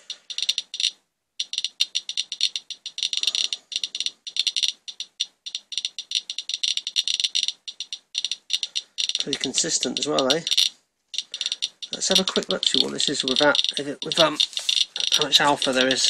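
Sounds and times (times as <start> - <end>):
geiger counter clicking: 0.0 - 16.0.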